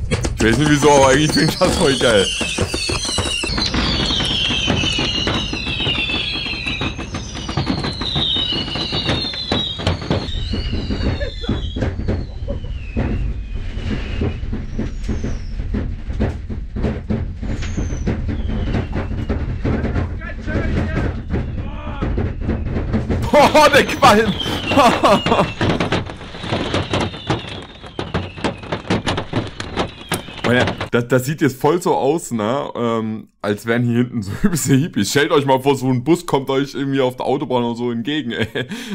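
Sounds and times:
fireworks crackling and popping: 0.0s - 31.0s
whistling fireworks: 0.0s - 31.2s.

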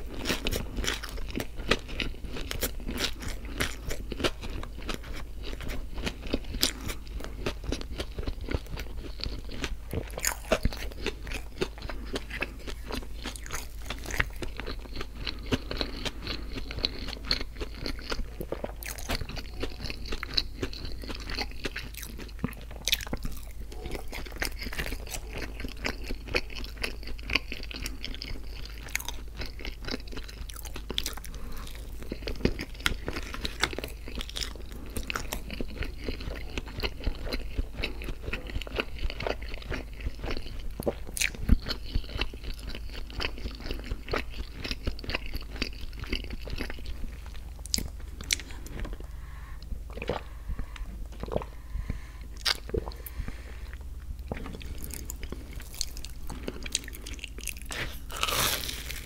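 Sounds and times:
close chewing: 0.0s - 59.0s.

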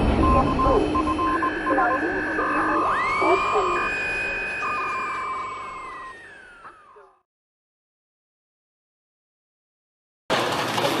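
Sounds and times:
high electronic beeps: 0.0s - 7.0s
second steady electronic tone: 0.0s - 7.0s
steady low electronic tone: 0.0s - 7.2s.

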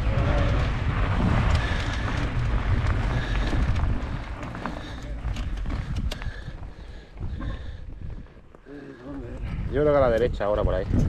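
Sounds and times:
wind rumble on microphone: 0.0s - 8.5s, 9.2s - 11.0s
bike tyres crunching on gravel: 0.0s - 8.6s.

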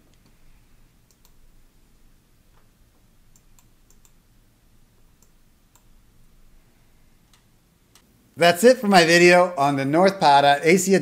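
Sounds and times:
faint computer mouse clicks: 1.0s - 1.4s, 3.3s - 4.2s, 5.2s - 5.9s.

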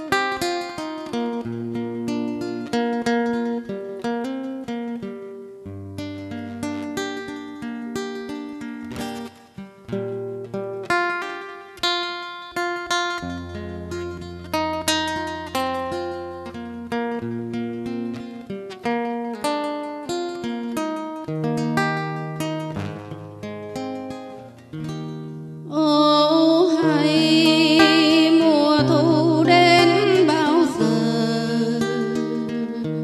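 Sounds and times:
solo acoustic guitar: 0.0s - 33.0s.

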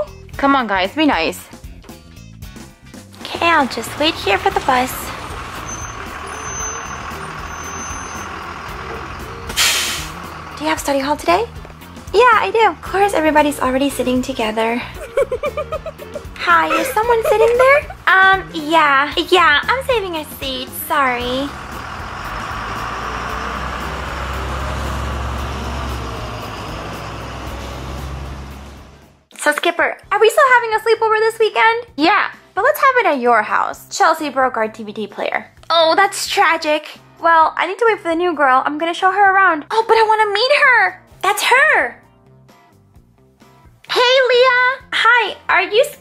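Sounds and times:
bus engine running: 1.7s - 29.3s.

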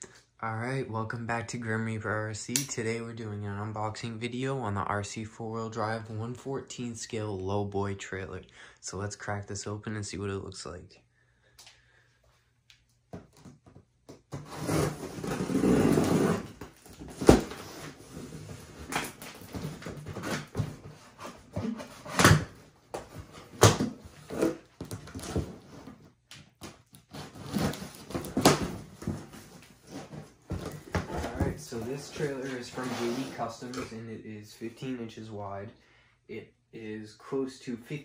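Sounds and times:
cardboard rustling and scraping: 14.3s - 34.0s.

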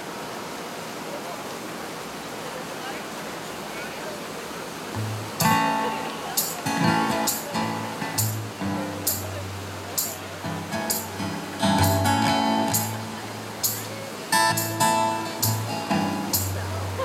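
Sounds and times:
strummed acoustic guitars: 4.9s - 17.0s
drum and cymbal hits: 5.0s - 16.7s
upright bass: 5.0s - 17.0s.

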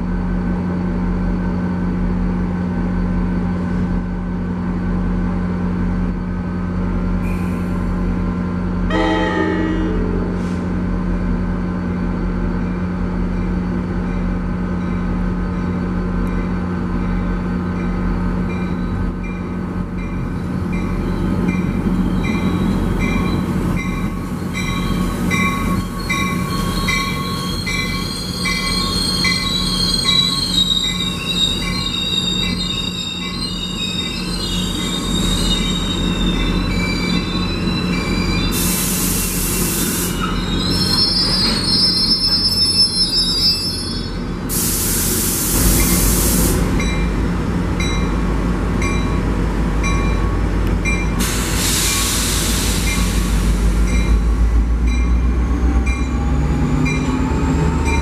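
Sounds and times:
locomotive engine humming: 0.2s - 38.6s, 45.1s - 58.0s
wheel squeals: 24.6s - 44.2s
loud hiss: 38.6s - 40.2s, 44.5s - 46.7s, 51.2s - 53.8s.

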